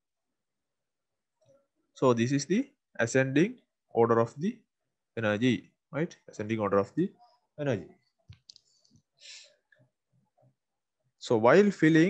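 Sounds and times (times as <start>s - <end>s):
faint clicks: 8.3s - 9.0s.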